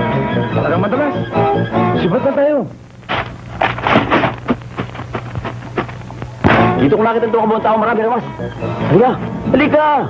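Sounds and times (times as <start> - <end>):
steady low hum: 2.7 - 9.5
sharp bangs: 3.0 - 6.8.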